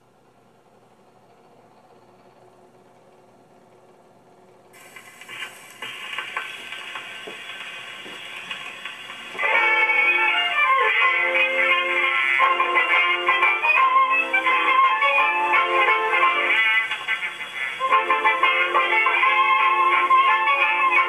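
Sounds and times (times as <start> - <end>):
record surface hiss and clicks: 0.0 - 21.0
gramophone record turning: 4.7 - 21.0
jazz band record playing: 4.8 - 21.0.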